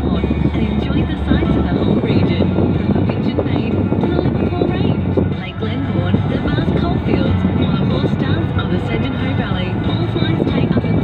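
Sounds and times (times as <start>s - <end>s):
car radio music: 0.0s - 11.0s
road and engine rumble: 0.0s - 11.0s.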